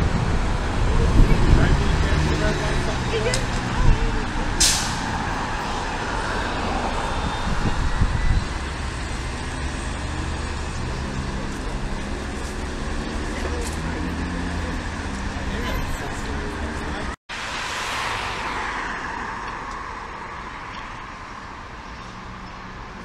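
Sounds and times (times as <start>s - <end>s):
bus engine running: 0.0s - 17.2s
street traffic rumble: 0.0s - 23.0s
air brakes hissing: 4.6s - 5.1s.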